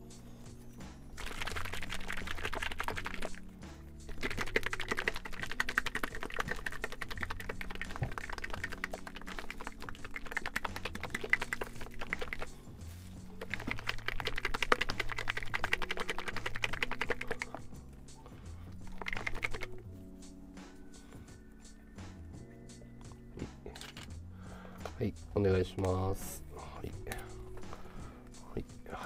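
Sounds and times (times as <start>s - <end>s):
quiet background music: 0.0s - 29.0s.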